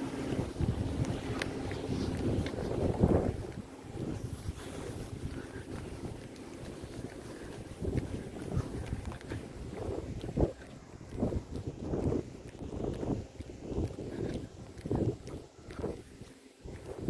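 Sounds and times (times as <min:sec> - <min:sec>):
car rolling on asphalt: 0:00.0 - 0:17.0
wind buffeting microphone: 0:00.0 - 0:17.0.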